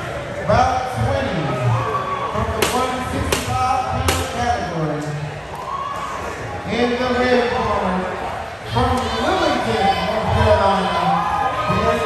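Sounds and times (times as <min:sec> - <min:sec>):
people talking in echoing hall: 0:00.0 - 0:12.0
sharp knocks: 0:02.6 - 0:04.4.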